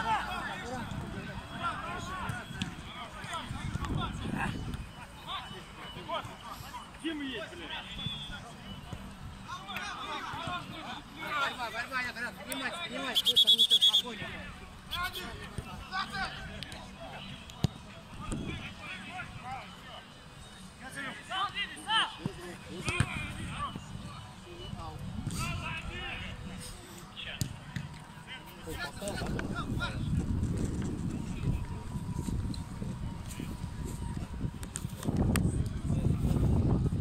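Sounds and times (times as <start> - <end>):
players shouting: 0.0 - 4.2
referee's whistle trilling blast: 7.7 - 8.5, 13.0 - 14.2.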